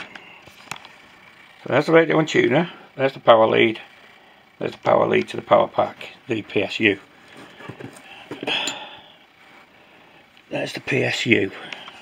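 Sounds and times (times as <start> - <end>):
small metal clink: 8.5 - 8.9.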